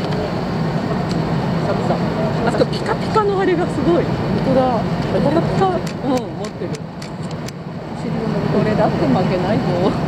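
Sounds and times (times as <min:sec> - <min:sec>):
people talking: 0:00.0 - 0:06.8, 0:07.9 - 0:10.0
low engine hum: 0:00.0 - 0:10.0.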